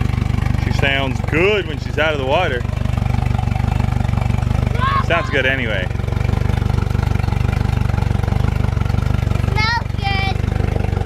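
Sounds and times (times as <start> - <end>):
outboard motor idling: 0.0 - 11.0.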